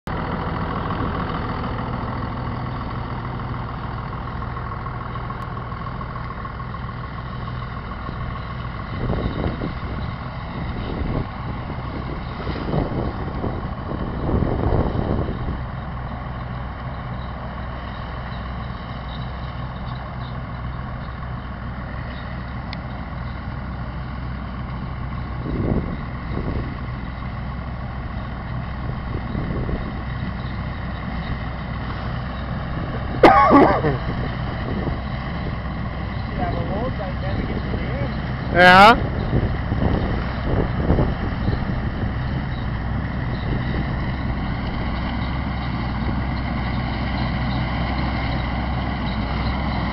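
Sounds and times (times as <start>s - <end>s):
tractor engine running: 0.0s - 49.9s.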